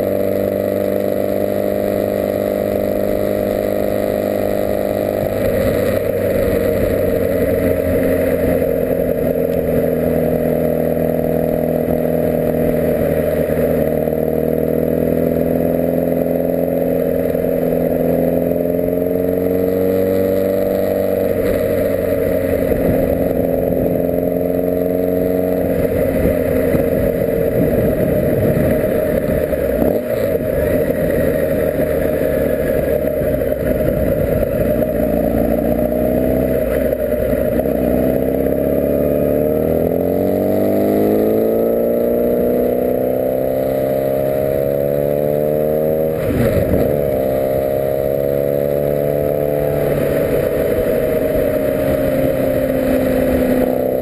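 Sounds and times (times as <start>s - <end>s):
motorcycle engine while riding: 0.0s - 54.0s
road and wind noise: 0.0s - 54.0s.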